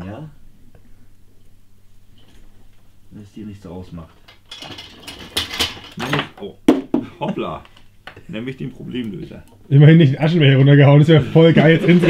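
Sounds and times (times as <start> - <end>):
metal hand tools rattling: 4.3 - 6.2.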